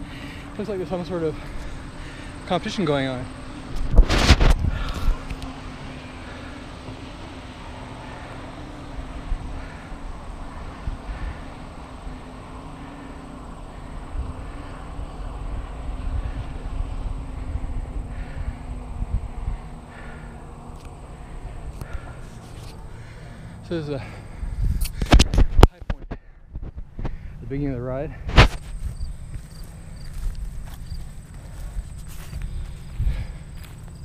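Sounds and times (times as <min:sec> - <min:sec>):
distant powerboat engines droning: 0:00.0 - 0:25.1, 0:27.2 - 0:34.0
wind rumble on microphone: 0:03.6 - 0:05.7, 0:13.5 - 0:22.8, 0:24.3 - 0:34.0
microphone handling noise: 0:03.7 - 0:05.3, 0:24.6 - 0:27.3, 0:28.2 - 0:29.0.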